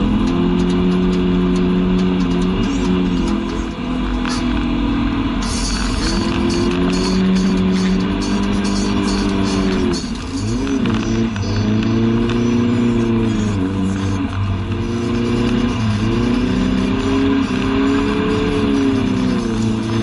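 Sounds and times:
car engine revving from cabin: 0.0 - 20.0.

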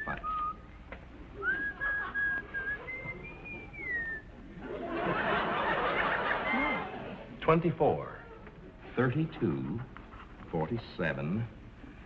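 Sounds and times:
woman whistling a tune: 0.0 - 0.7, 1.4 - 4.3.

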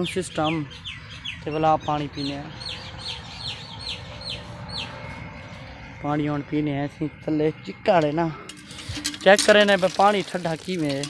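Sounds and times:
small birds chirping: 0.0 - 8.4.

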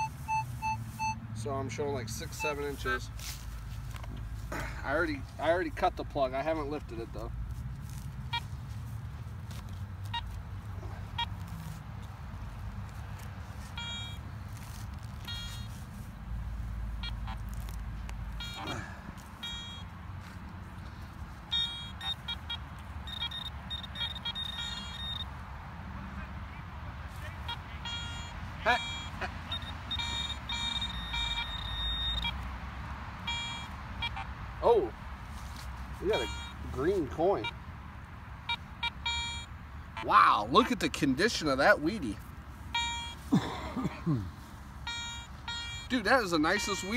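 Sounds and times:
metal detector beeps: 0.0 - 3.0, 13.7 - 14.2, 15.2 - 15.8, 17.0 - 17.4, 18.3 - 19.9, 21.5 - 25.3, 27.4 - 32.4, 33.2 - 34.3, 36.0 - 37.6, 38.5 - 40.1, 42.7 - 43.2, 44.8 - 46.9.

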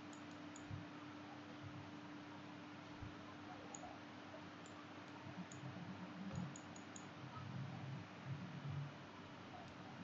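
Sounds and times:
computer mouse clicking: 0.0 - 0.8, 2.8 - 4.0, 4.6 - 7.1, 9.6 - 9.8
faint hiss and hum: 0.0 - 10.0.

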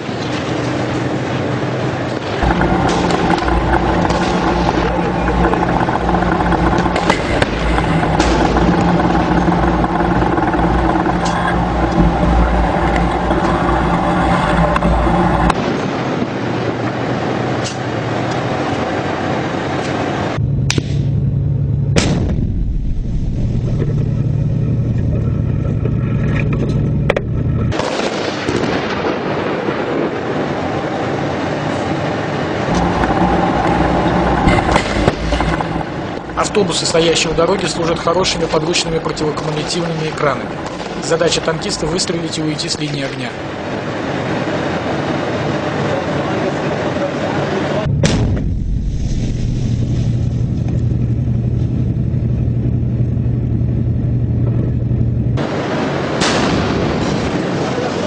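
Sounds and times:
tank engine droning: 0.0 - 58.0.

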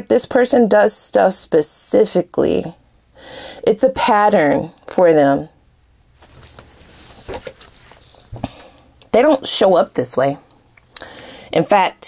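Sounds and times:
cards being shuffled: 6.2 - 8.5.

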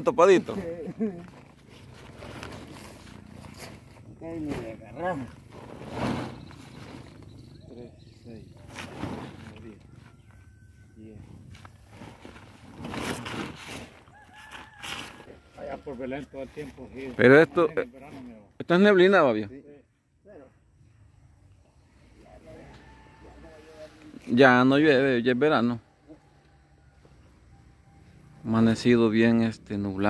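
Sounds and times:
plastic sack rustling: 1.3 - 3.9, 11.7 - 14.1
pitchfork scraping silage: 5.5 - 7.3, 8.7 - 9.4.

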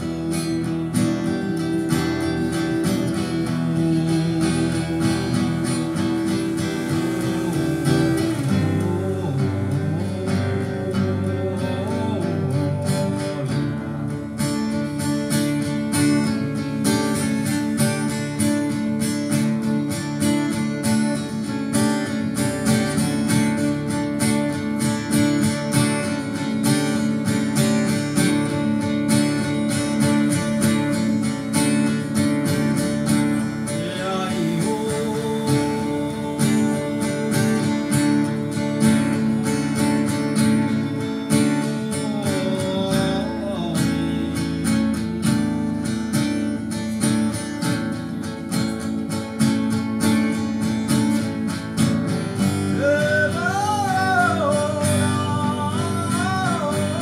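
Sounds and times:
acoustic guitars strumming: 0.0 - 57.0.

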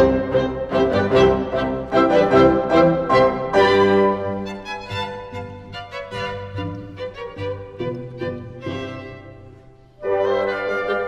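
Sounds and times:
cello and bowed strings: 0.0 - 11.0
violin melody: 0.0 - 11.0.

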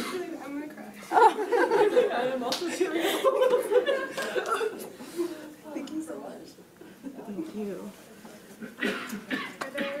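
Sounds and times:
voices talking and chuckling: 0.0 - 5.9.

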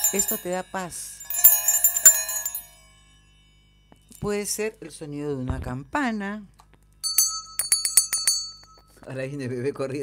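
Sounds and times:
small bell chiming: 0.0 - 4.8, 7.0 - 9.4.

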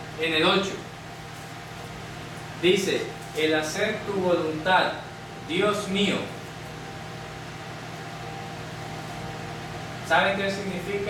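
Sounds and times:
low machine hum and hiss: 0.0 - 11.0
faint high whine: 2.6 - 11.0.

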